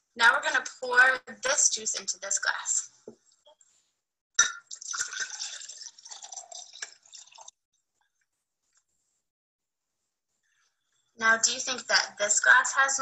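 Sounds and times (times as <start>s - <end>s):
juice pouring into glass: 4.4s - 7.6s.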